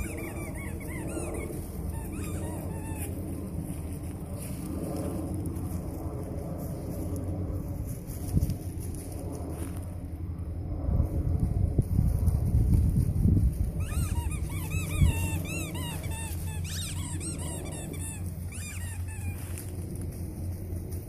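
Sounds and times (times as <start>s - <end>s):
animal high squeaky calls: 0.0s - 3.2s, 13.8s - 19.7s
wind rumble on microphone: 0.0s - 21.0s.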